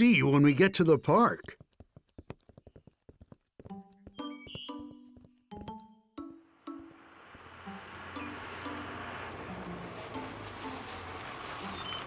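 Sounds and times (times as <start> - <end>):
soft background music: 3.7 - 12.0.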